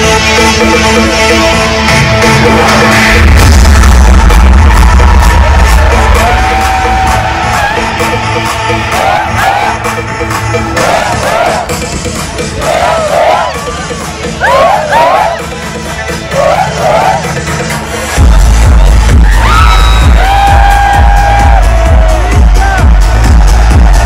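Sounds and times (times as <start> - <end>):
live band music with heavy bass: 0.0 - 24.0
crowd whooping and cheering: 2.6 - 9.9, 12.5 - 17.4, 18.3 - 24.0.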